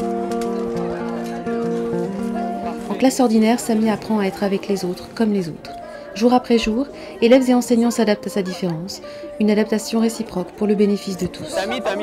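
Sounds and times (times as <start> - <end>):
sustained chords: 0.0 - 12.0.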